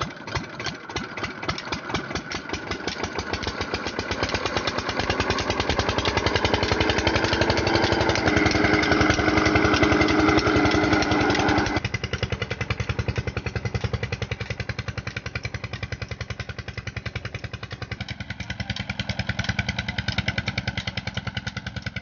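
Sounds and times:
diesel engine exhaust beats: 0:00.0 - 0:22.0.

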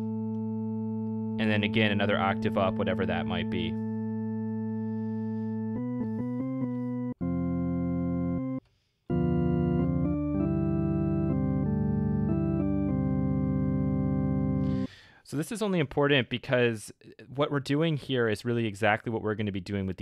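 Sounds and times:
drawbar organ playing: 0:00.0 - 0:14.9.

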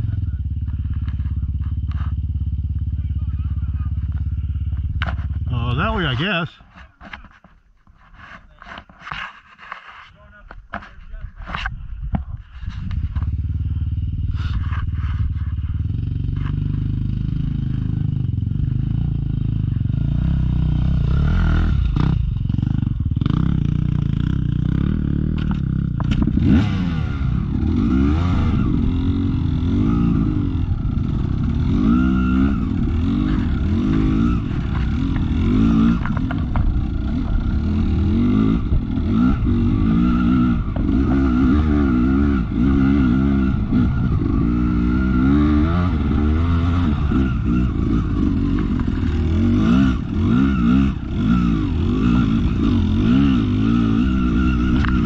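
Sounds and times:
dirt bike engine revving: 0:12.8 - 0:55.0.

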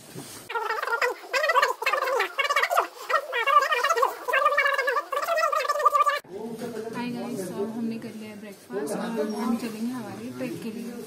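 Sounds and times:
sped-up garbled speech: 0:00.5 - 0:06.3.

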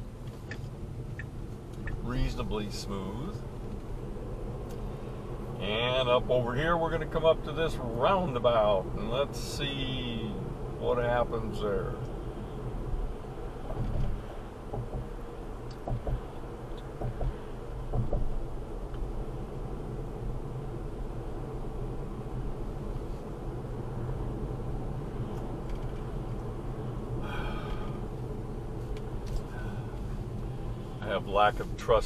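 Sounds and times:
road and tyre noise in car cabin: 0:00.0 - 0:32.0.

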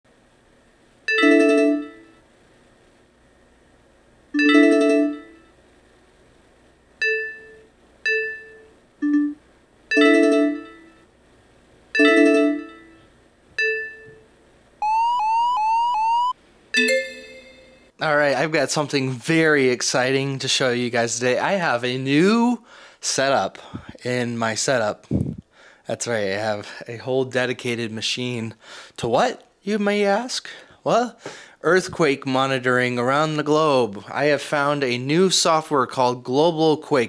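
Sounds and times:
electronic alert chimes: 0:04.4 - 0:05.4, 0:07.0 - 0:11.0, 0:12.0 - 0:13.0, 0:14.8 - 0:17.9.

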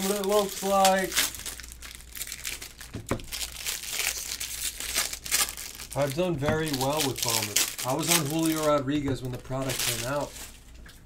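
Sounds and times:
foil wrappers crinkling and tearing: 0:00.0 - 0:10.8.

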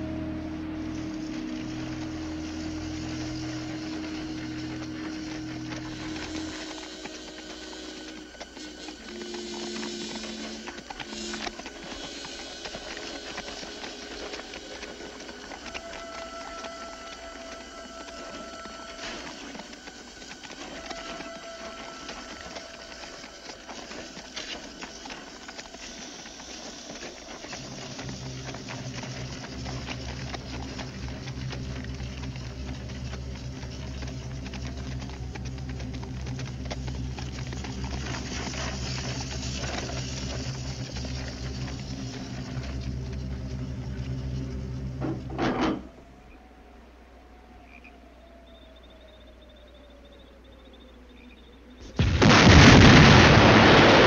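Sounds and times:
deep bass notes: 0:00.0 - 0:06.6
orchestral film score: 0:00.0 - 0:45.9.

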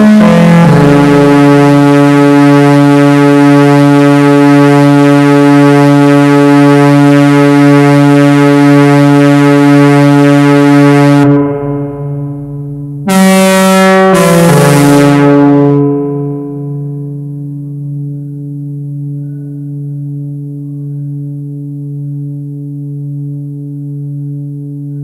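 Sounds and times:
higher synthesizer note: 0:00.0 - 0:25.0
synthesizer held note: 0:00.0 - 0:25.0.

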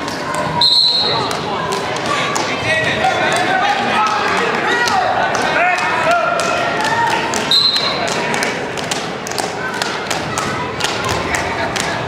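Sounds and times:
spectators and coaches shouting: 0:00.0 - 0:08.4.

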